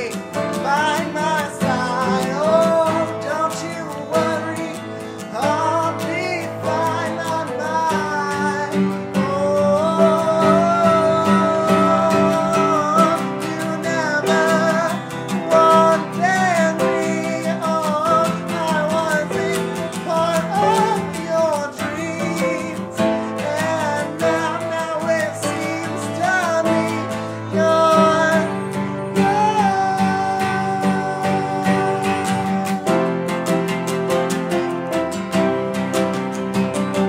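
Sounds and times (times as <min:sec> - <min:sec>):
man singing slow love song: 0:00.0 - 0:34.9
acoustic guitar strumming: 0:00.0 - 0:37.0
upright piano chords: 0:00.0 - 0:37.0.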